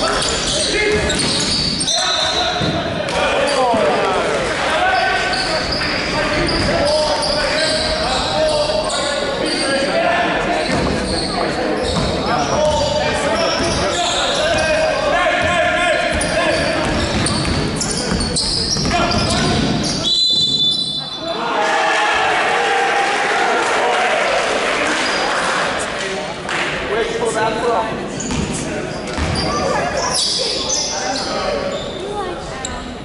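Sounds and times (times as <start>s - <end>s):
sneakers squeaking on hardwood: 0.0s - 3.8s, 5.0s - 9.9s, 10.5s - 21.2s, 28.2s - 32.1s
referee's whistle: 0.5s - 2.6s, 18.2s - 21.4s
basketball dribbling: 15.4s - 20.0s.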